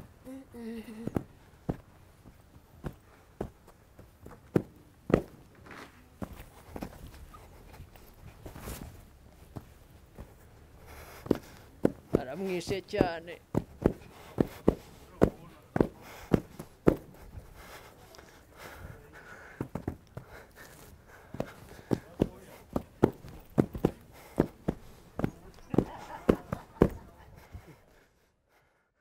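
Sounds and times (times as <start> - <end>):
faint voice: 0.2 - 1.2
feet stamping on packed ground: 0.8 - 27.8.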